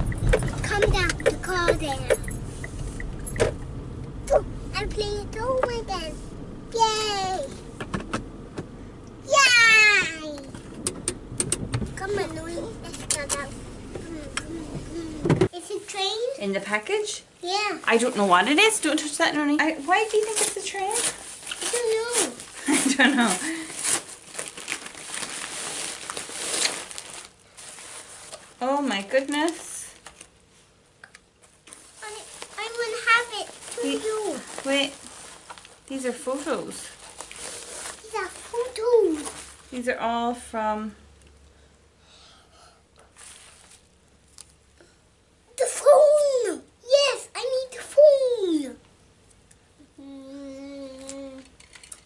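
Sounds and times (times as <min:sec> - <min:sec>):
paper mailer and plastic rustling: 0:17.9 - 0:30.4, 0:31.6 - 0:40.2, 0:43.2 - 0:43.9
paper rustling: 0:31.6 - 0:35.8, 0:36.9 - 0:39.7.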